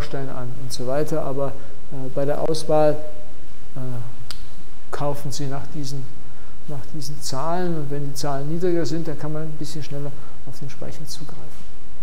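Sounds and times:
man saying uh: 0:03.8 - 0:04.2
sharp click: 0:04.3 - 0:04.6.

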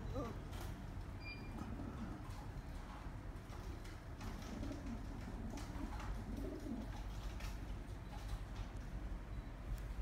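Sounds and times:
pigeon cooing: 0:00.0 - 0:00.4, 0:04.3 - 0:07.4.

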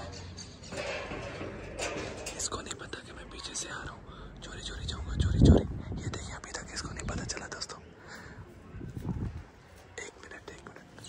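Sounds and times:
man whispering: 0:02.6 - 0:08.0, 0:09.9 - 0:11.0.

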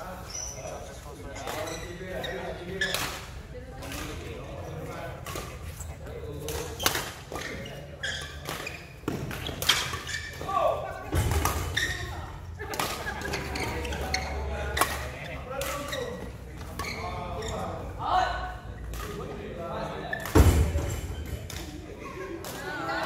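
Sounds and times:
players' voices and calls: 0:00.0 - 0:23.0.

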